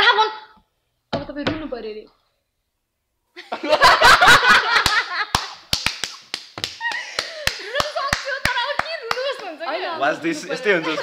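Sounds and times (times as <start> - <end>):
people laughing: 3.4 - 5.5, 6.8 - 9.4, 10.2 - 11.0
hand claps: 4.5 - 9.6.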